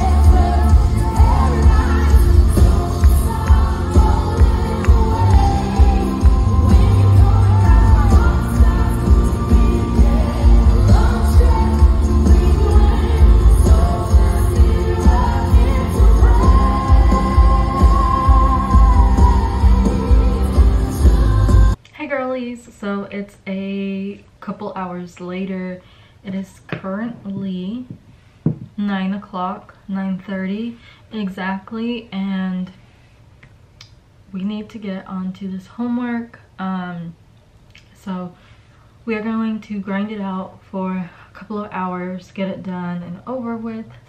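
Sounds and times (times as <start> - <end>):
people singing: 0.0 - 21.8
worship band playing live: 0.0 - 21.8.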